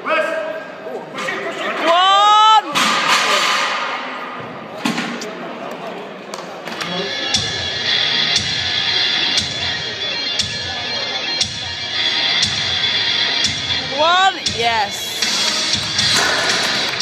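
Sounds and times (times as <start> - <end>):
music: 6.8 - 17.0.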